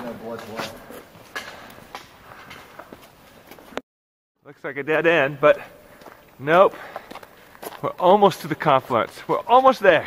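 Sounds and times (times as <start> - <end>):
footsteps crunching on sand: 0.0 - 3.8, 5.7 - 10.0.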